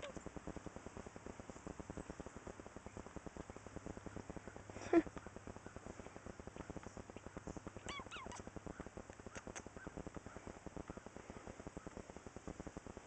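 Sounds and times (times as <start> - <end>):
rapidly pulsing low rumble: 0.0 - 13.0
cat chirping meows: 7.8 - 8.5.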